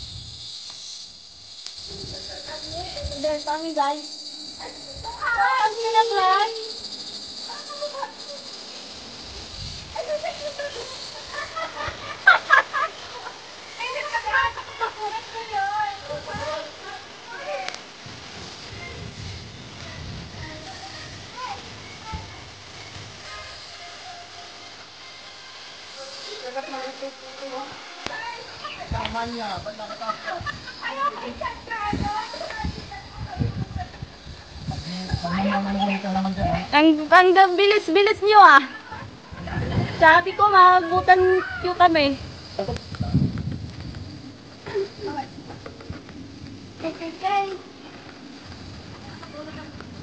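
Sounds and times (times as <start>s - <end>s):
steady high-pitched drone: 0.0s - 50.0s
people talking and calling out: 1.9s - 24.0s, 25.9s - 50.0s.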